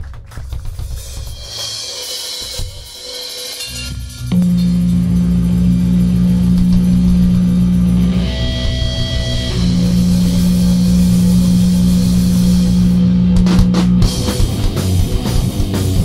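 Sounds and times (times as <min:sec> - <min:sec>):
rock band distorted guitar drone: 0:00.9 - 0:16.0.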